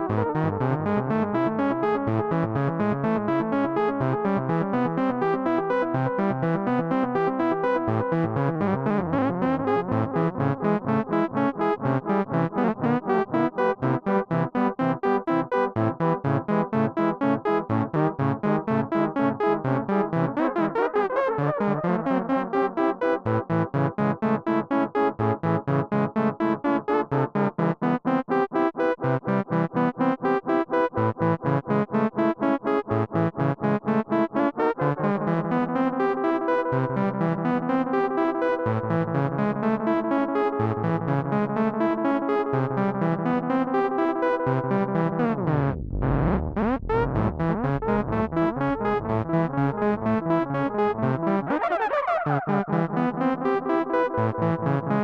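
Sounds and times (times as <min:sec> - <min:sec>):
synthesizer repeating note pattern: 0:44.9 - 0:51.6.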